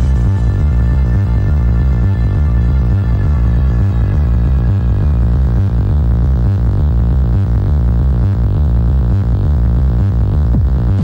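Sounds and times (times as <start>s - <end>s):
electronic dance music: 0.0s - 11.0s
heavy pulsing bass line: 0.0s - 11.0s.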